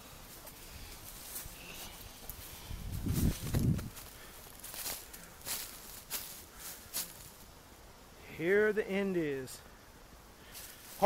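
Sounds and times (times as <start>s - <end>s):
footsteps on woodland trail: 0.0s - 7.4s, 10.5s - 11.0s.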